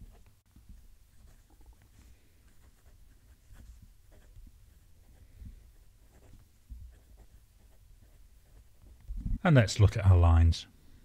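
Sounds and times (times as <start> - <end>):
fountain pen scratching on paper: 1.1 - 9.0.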